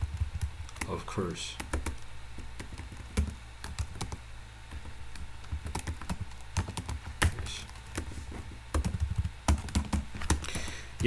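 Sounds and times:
computer keyboard typing: 0:00.0 - 0:01.0, 0:01.6 - 0:08.1, 0:08.7 - 0:11.0.

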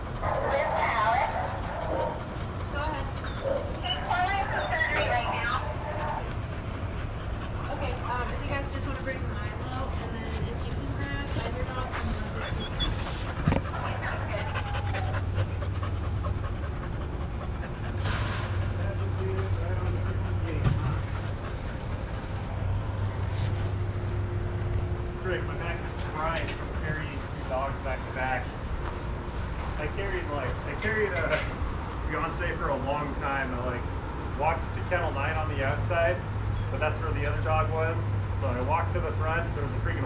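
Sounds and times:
dogs panting: 0:00.0 - 0:40.0.

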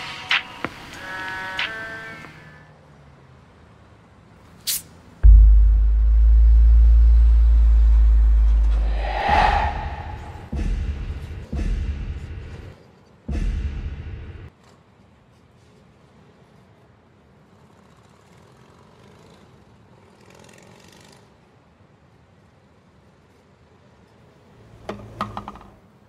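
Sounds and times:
whoosh: 0:05.2 - 0:11.6
rumbling bursts: 0:05.2 - 0:12.6
very deep bass drone: 0:05.2 - 0:12.6.

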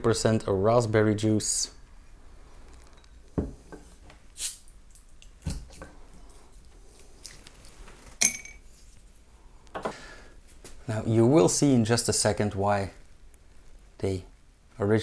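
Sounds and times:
bottle set down on wooden table: 0:03.4 - 0:03.9.

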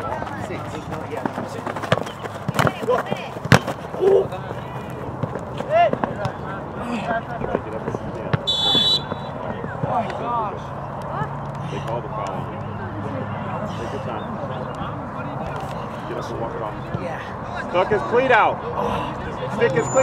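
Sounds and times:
ball kicks: 0:01.2 - 0:03.8
distant shouts of players: 0:08.4 - 0:10.2
referee's whistle blast: 0:08.5 - 0:09.3.

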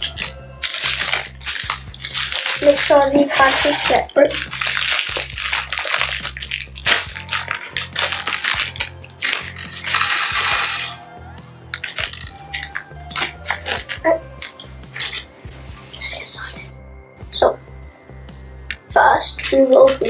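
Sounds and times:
plastic bags crinkling: 0:00.0 - 0:11.0, 0:11.7 - 0:16.7, 0:18.8 - 0:20.0
plastic bricks clinking: 0:00.0 - 0:11.0, 0:11.7 - 0:15.3, 0:18.8 - 0:20.0.

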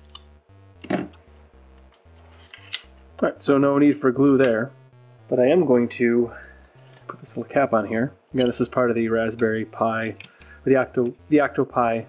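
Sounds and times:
chiptune background music: 0:00.0 - 0:12.0.

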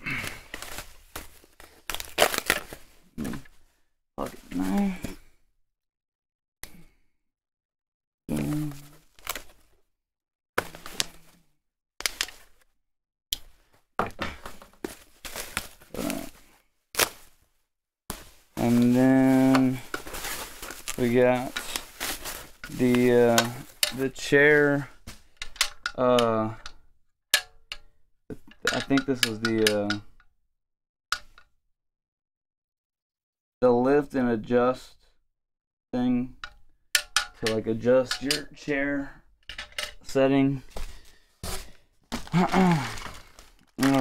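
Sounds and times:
plastic packaging crinkling: 0:00.2 - 0:03.0, 0:08.4 - 0:09.7, 0:14.9 - 0:16.4, 0:18.1 - 0:25.4, 0:40.8 - 0:44.0.

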